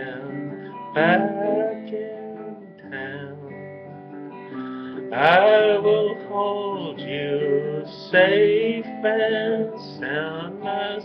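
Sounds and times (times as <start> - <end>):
acoustic guitar strummed: 0.0 - 11.0.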